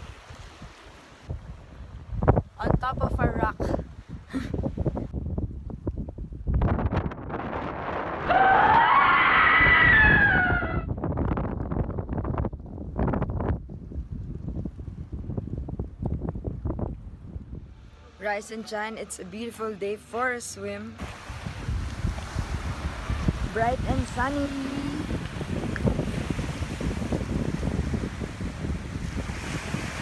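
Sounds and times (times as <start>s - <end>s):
wind buffeting microphone: 0.0s - 18.0s, 21.0s - 30.0s
loud high cry: 8.3s - 10.9s.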